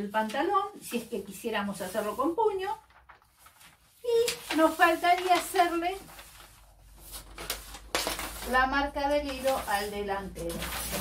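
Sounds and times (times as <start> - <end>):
paper sheets rustling: 0.0 - 11.0.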